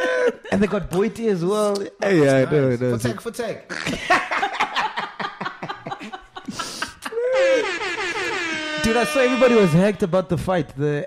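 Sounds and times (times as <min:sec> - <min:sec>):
high-pitched wailing: 0:07.2 - 0:10.2.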